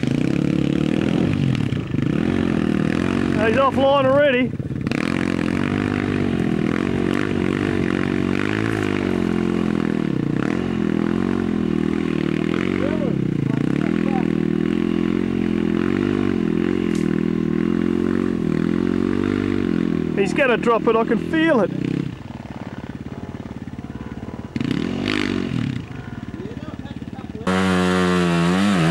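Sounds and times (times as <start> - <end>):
dirt bike engine revving: 0.0 - 28.9.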